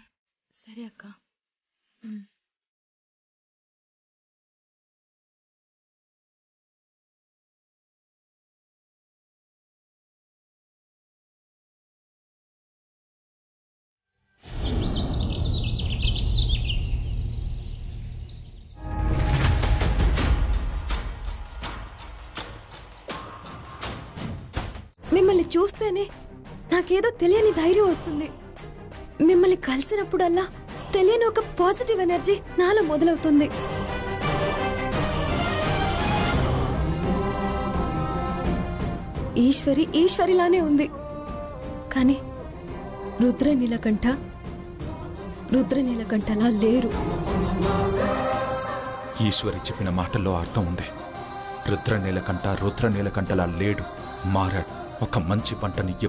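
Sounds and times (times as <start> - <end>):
birds chirping: 14.6 - 18.8
background music: 18.7 - 56.0
music with percussive beats: 19.0 - 24.9
crickets chirping: 23.1 - 32.1, 38.8 - 46.6.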